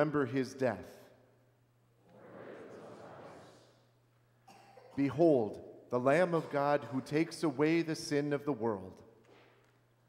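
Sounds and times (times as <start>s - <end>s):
man speaking: 0.0s - 1.0s, 5.0s - 9.0s
congregation speaking in unison: 2.0s - 3.9s, 4.5s - 9.0s.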